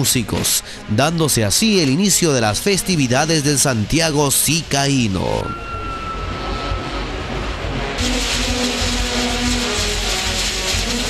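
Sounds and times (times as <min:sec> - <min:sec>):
fireworks hissing and crackling: 0:07.8 - 0:11.0.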